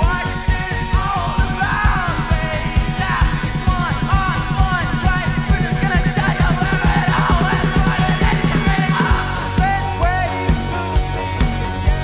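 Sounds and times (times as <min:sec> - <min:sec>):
live rock band playing: 0:00.0 - 0:12.0
man singing lead vocal: 0:00.0 - 0:12.0.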